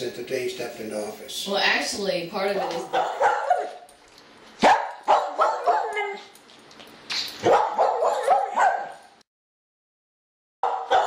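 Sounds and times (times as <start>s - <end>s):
animal yelping: 2.8s - 3.9s, 4.6s - 6.3s, 7.4s - 9.0s.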